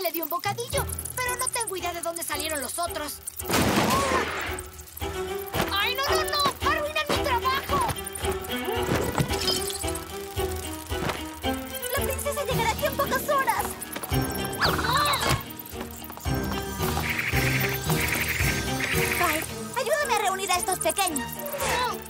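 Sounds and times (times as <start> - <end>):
cartoon background music: 0.0 - 22.0.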